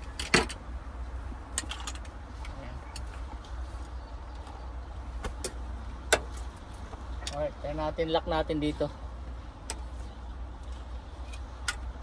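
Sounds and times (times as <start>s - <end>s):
man speaking: 7.3s - 9.0s.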